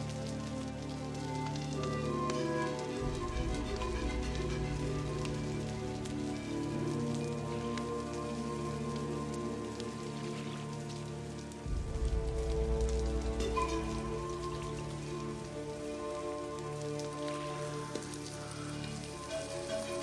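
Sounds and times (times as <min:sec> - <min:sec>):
rain pattering on water: 0:00.0 - 0:20.0.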